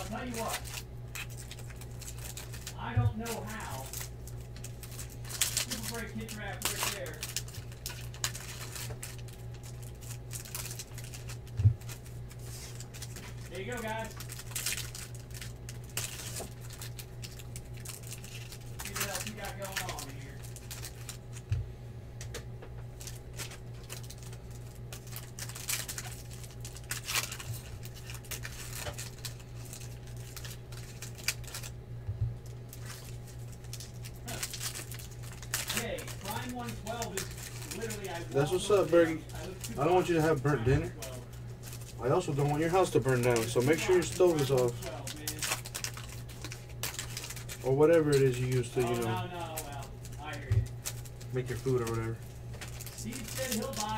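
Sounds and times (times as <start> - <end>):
foil wrappers being torn open: 0.0 - 21.5, 22.9 - 31.8, 32.4 - 53.9
cards shuffled by hand: 0.0 - 21.6, 32.7 - 53.9
steady low hum: 0.0 - 53.9.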